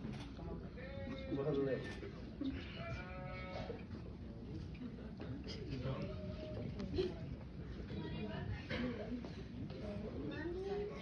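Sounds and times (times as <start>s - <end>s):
guests chattering: 0.0s - 11.0s.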